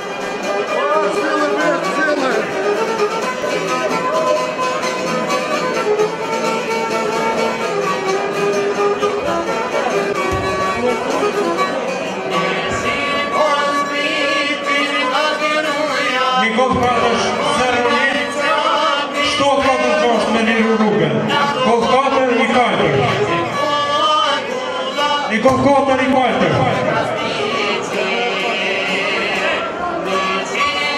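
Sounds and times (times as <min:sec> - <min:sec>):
long-necked lute: 0:00.0 - 0:30.9
violin playing a busy melody: 0:00.0 - 0:30.9.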